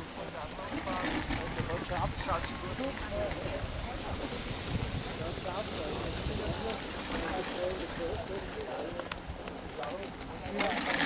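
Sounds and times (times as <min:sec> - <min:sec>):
distant indistinct voices: 0:00.0 - 0:11.0
wind rumble on microphone: 0:00.6 - 0:10.6.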